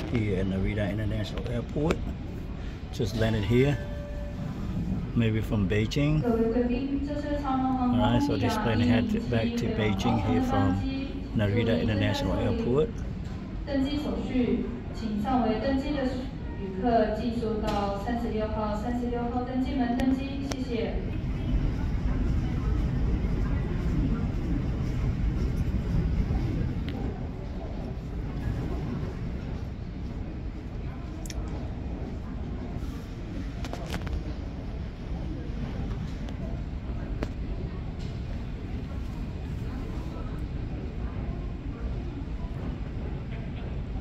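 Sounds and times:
faint voices: 18.8s - 44.0s
steady low rumble: 20.8s - 44.0s.

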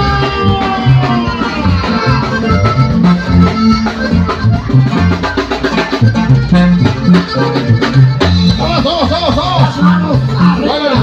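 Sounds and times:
button accordion melody: 0.0s - 11.0s
guitar strumming: 0.0s - 11.0s
sousaphone bass line: 0.0s - 11.0s
steady drum beat: 0.0s - 11.0s.

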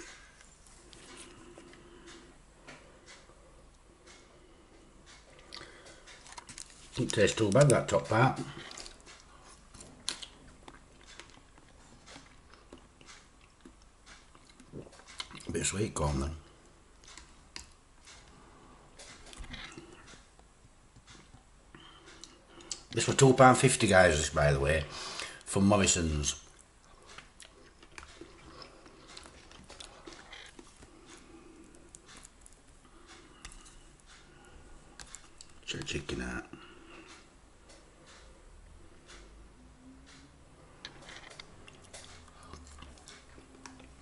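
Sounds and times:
person chewing food: 0.0s - 15.5s, 17.0s - 23.0s, 26.5s - 35.6s, 40.0s - 44.0s.

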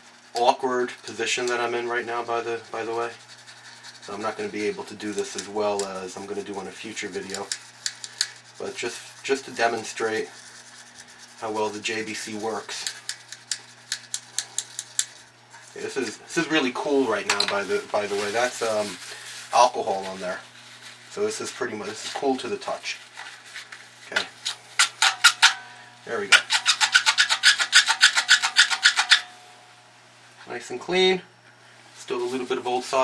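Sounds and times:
brush scrubbing metal clicks: 0.3s - 16.2s, 26.3s - 29.3s.

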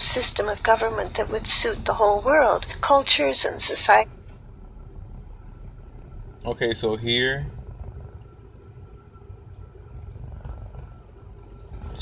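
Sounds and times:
car rumble from inside cabin: 0.0s - 12.0s.

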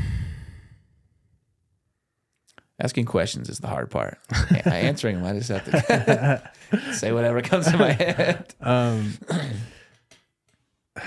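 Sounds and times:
man sighing: 8.6s - 9.9s.

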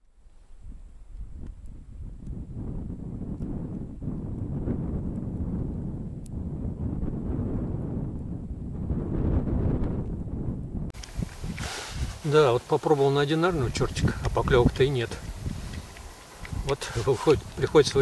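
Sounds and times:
wind buffeting microphone: 0.3s - 18.0s.

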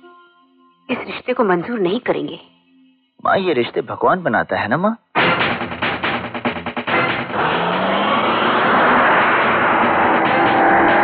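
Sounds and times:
car engine accelerating hard: 6.9s - 11.0s
road noise rushing: 6.9s - 11.0s.

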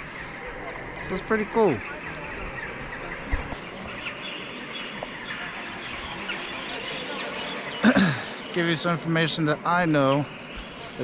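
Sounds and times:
murmur of crowd: 0.0s - 11.0s.

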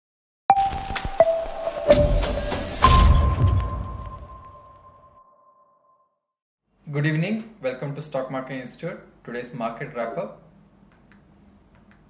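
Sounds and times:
high ringing tone: 0.5s - 6.1s.

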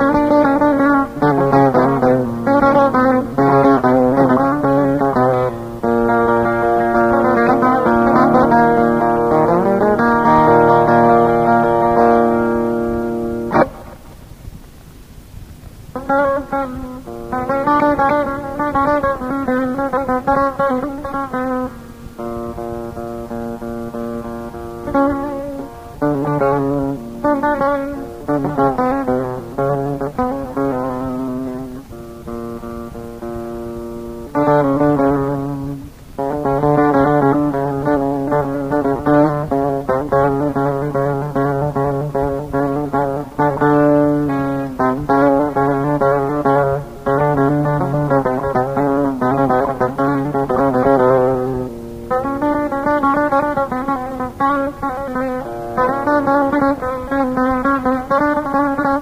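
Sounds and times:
plucked string instrument runs: 0.0s - 14.1s, 16.0s - 59.0s.

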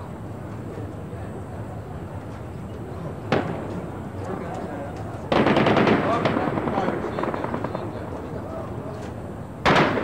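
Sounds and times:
voices: 0.0s - 9.5s
automatic gunfire: 5.3s - 7.9s, 9.7s - 10.0s.

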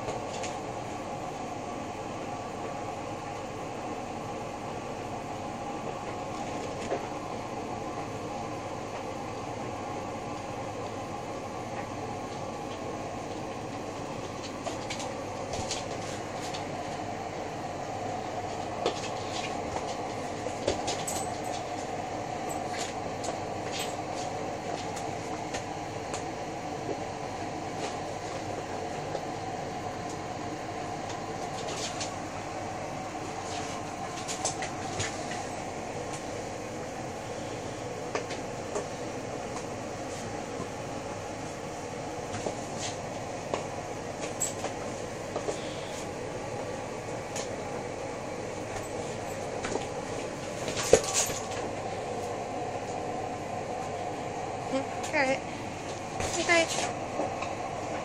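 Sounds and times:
steady background hum: 0.0s - 58.0s
puppy claws on tiled floor: 48.7s - 51.7s.

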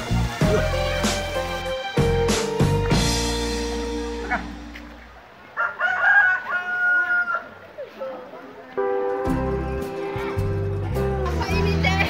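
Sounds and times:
rooster crowing: 5.5s - 7.6s.

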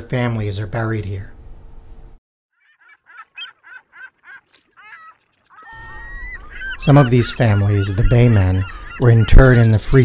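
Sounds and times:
birds gliding calls: 2.5s - 10.0s
birds short rapid calls: 2.5s - 10.0s.

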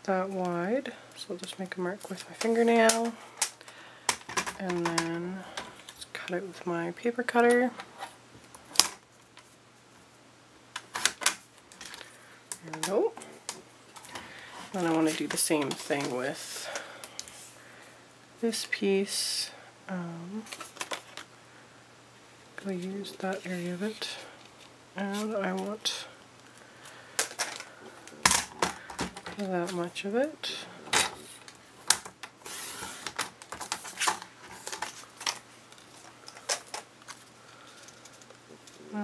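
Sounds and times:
paper rustling: 30.9s - 38.8s.

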